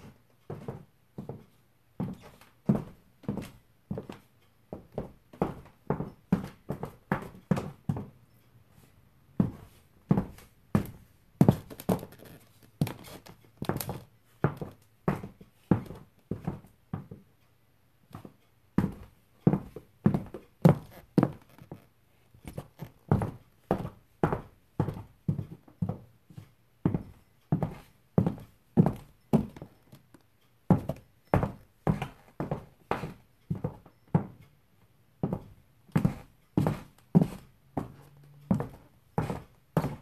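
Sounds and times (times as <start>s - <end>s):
high heels on hardwood floor: 30.7s - 34.4s, 35.2s - 40.0s.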